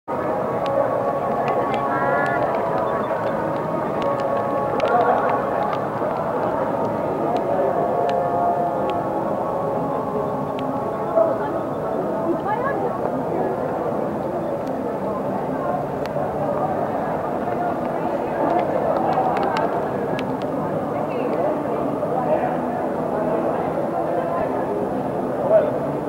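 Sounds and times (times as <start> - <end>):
crowd chatter: 0.1 - 26.0.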